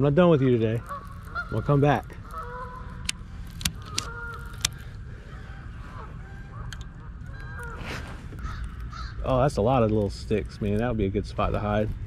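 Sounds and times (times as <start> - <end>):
distant geese honking: 0.0 - 11.9
sharp clicks of gear: 3.0 - 4.9.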